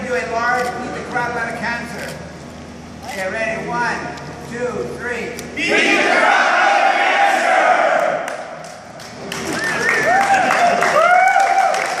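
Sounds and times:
crowd yelling together: 0:05.6 - 0:08.2
people clapping: 0:08.0 - 0:12.0
people whooping and cheering: 0:09.3 - 0:12.0.

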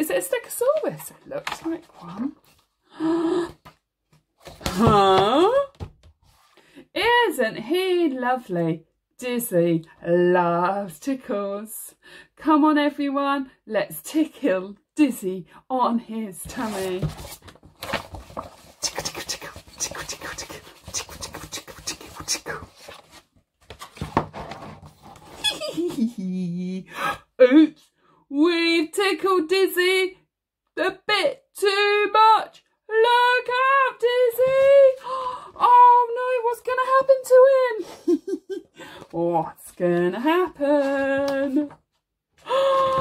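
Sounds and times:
book pages rustling: 0:16.4 - 0:25.4.

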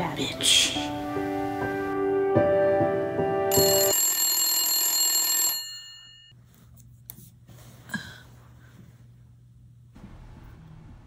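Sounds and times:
background music: 0:00.0 - 0:03.9
phone ringing: 0:03.5 - 0:06.3.

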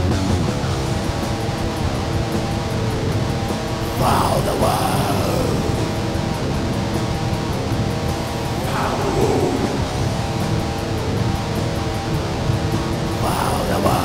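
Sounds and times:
death metal band playing: 0:02.1 - 0:14.0
roared vocal: 0:08.4 - 0:10.6.

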